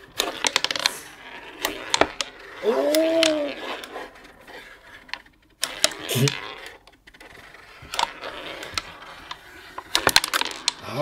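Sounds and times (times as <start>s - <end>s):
game pieces clicking and knocking: 0.0s - 11.0s.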